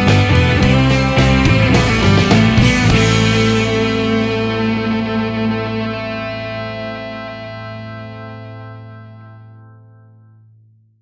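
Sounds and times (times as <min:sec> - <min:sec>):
rock band final guitar chord: 0:00.0 - 0:09.6.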